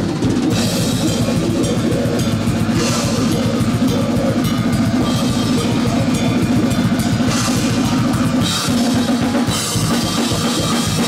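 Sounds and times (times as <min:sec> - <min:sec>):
death metal band playing: 0:00.0 - 0:11.0.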